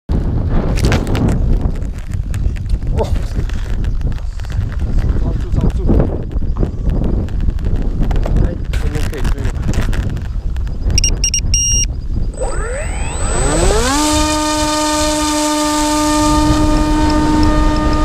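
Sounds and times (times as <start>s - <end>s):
wind rumbling on microphone: 0.1s - 18.0s.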